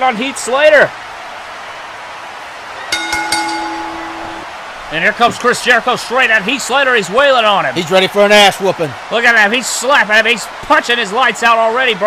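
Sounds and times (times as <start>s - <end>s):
ring bell struck: 2.9s - 4.5s.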